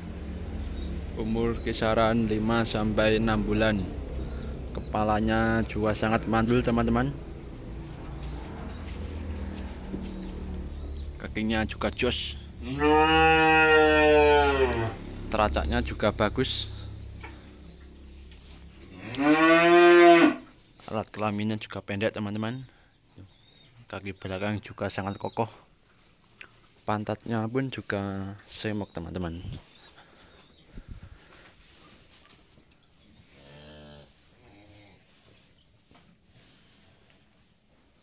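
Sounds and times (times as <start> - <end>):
calf mooing: 12.6 - 15.1, 18.9 - 20.5.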